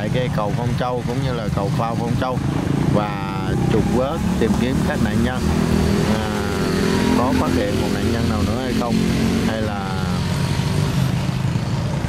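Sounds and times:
car and motorbike engines rumbling: 0.0 - 12.0.

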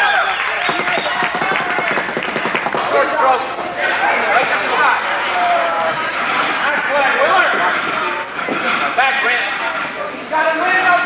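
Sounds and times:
crowd calling out and chattering: 0.0 - 11.0.

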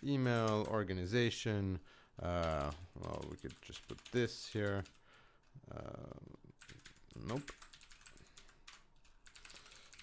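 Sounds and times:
typing on computer keyboard: 2.4 - 5.1, 6.6 - 10.0.

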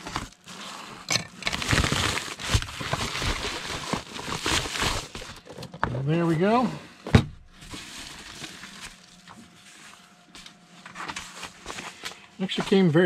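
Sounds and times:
padded envelope tearing and crinkling: 0.0 - 5.4, 10.9 - 12.8.

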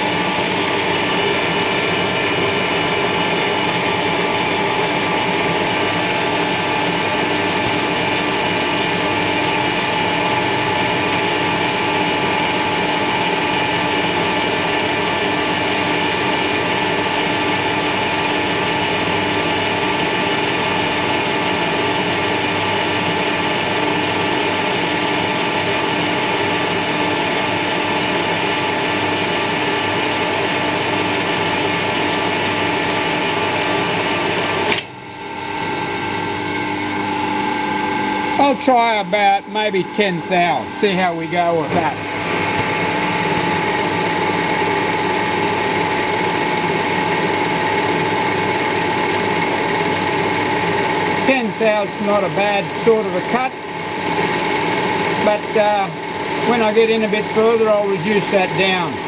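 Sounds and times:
metal lathe humming and whining: 0.0 - 59.0.

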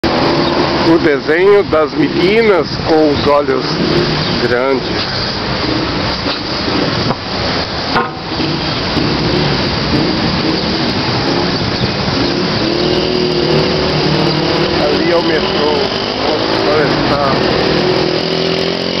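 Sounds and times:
car engines: 0.0 - 19.0
passing vehicles: 0.0 - 19.0.

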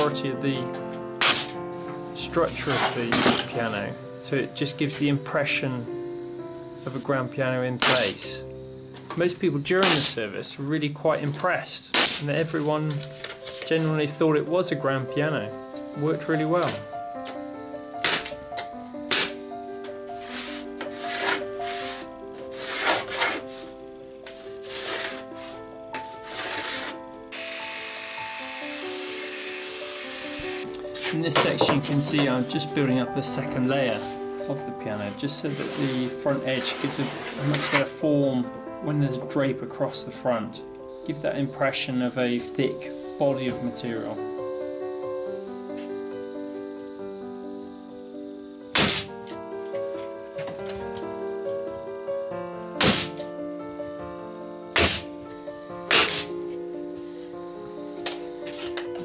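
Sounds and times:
background music with held notes: 0.0 - 59.0
nail gun shot: 1.2 - 1.6, 7.8 - 8.2, 9.8 - 10.2, 11.9 - 12.4, 18.0 - 18.3, 19.1 - 19.4, 48.7 - 49.1, 52.8 - 53.2, 54.8 - 55.1, 55.9 - 56.3
handheld power tool running: 1.2 - 3.8, 5.5 - 10.2, 15.6 - 23.6, 24.3 - 31.1, 54.3 - 59.0.

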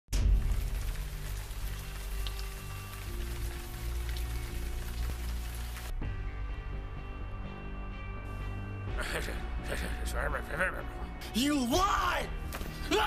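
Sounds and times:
rain-like hiss: 0.2 - 5.9.

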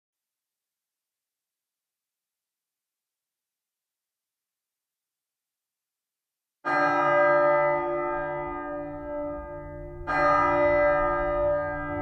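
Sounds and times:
large church bell ringing: 6.6 - 12.0.

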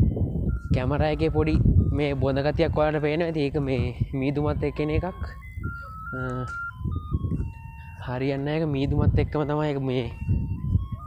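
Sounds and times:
man's voice: 0.7 - 5.4, 6.1 - 6.7, 8.0 - 10.2
simple electronic jingle: 4.0 - 11.0.

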